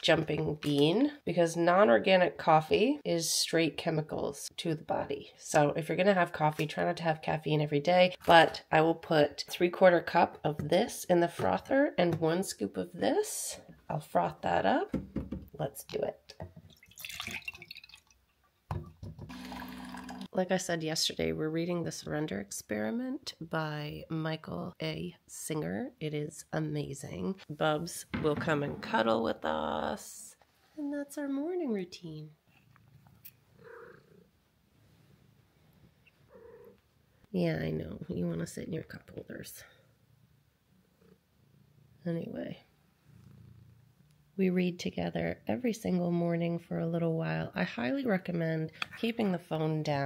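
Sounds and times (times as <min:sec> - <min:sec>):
coffee streaming into a mug: 0:16.7 - 0:18.1, 0:19.3 - 0:20.3
coffee maker pump hum: 0:19.2 - 0:20.3
cat purring: 0:32.3 - 0:37.3, 0:38.0 - 0:44.4.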